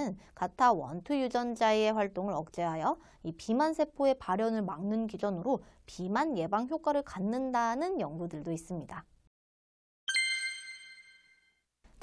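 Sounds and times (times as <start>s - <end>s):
bright bell-like chime: 10.1s - 11.6s.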